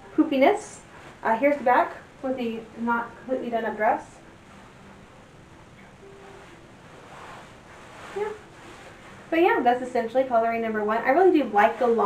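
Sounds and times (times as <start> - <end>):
silk dress rustling: 0.1 - 5.3, 6.0 - 12.0.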